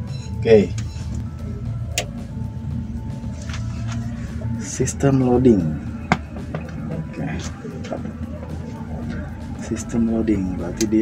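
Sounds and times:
steady low drone: 0:00.0 - 0:11.0.

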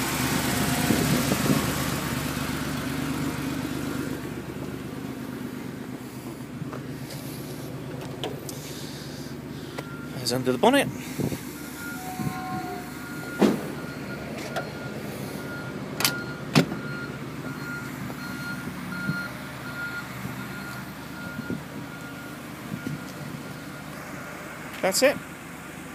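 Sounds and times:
car engine idling: 0:00.0 - 0:25.9.

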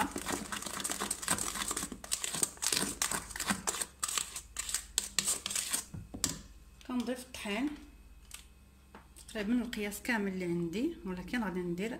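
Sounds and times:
spatula scraping metal bowl: 0:00.0 - 0:05.9.

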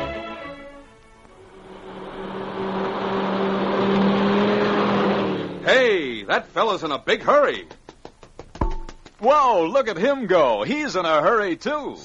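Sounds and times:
road noise: 0:00.0 - 0:07.1
car engine hum: 0:01.3 - 0:06.3.

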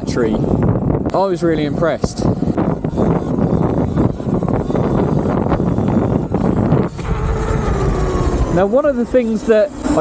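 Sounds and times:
electric motor whine: 0:00.0 - 0:10.0
road noise: 0:00.0 - 0:10.0
wind buffeting microphone: 0:00.0 - 0:10.0.

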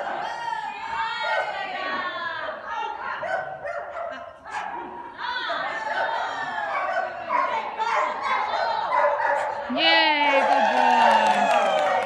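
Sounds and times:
dog barking: 0:03.2 - 0:04.9, 0:05.9 - 0:09.7.

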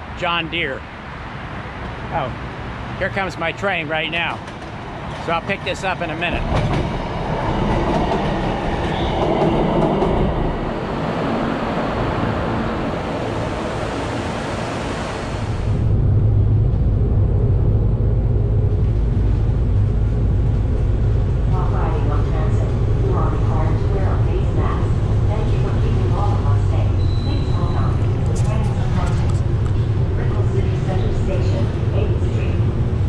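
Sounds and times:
train ride rumble: 0:00.0 - 0:33.0.

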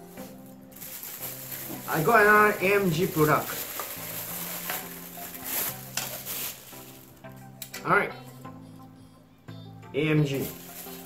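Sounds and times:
plastic bag crinkling: 0:00.0 - 0:07.2, 0:10.4 - 0:11.0
background music with held notes: 0:00.0 - 0:11.0.

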